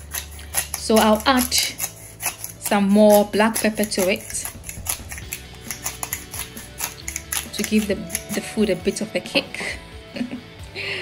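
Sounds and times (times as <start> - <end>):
pepper grinder clicking: 0.0 - 8.8
background music: 0.0 - 11.0.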